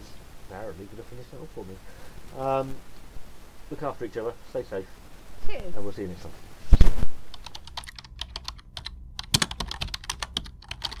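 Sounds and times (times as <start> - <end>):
computer keyboard typing: 7.3 - 11.0.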